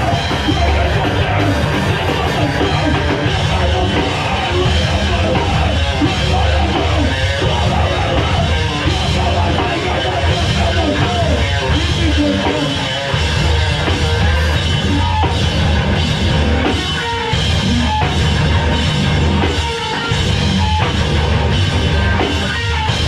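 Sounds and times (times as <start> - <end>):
punk band playing live: 0.0 - 23.0.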